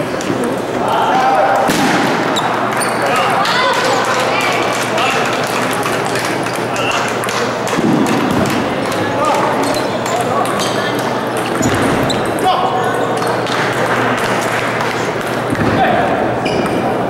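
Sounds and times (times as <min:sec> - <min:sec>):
many voices talking in a hall: 0:00.0 - 0:17.0.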